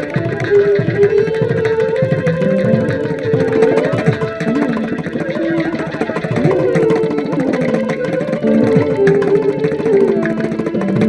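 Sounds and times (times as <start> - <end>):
hand drum strokes: 0.0 - 11.0
violin playing ornamented melody: 0.0 - 11.0.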